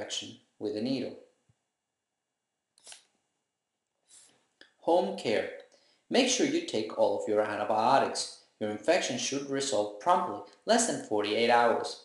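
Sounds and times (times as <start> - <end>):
soft hiss: 4.0 - 6.4.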